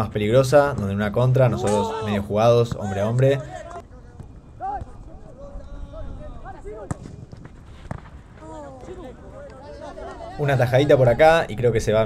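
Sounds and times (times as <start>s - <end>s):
footballers shouting: 1.4s - 7.0s.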